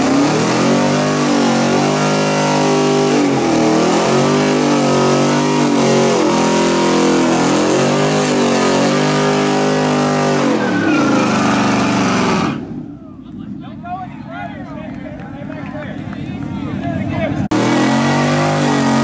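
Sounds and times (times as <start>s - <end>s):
engine revving hard: 0.0s - 12.7s, 17.5s - 19.0s.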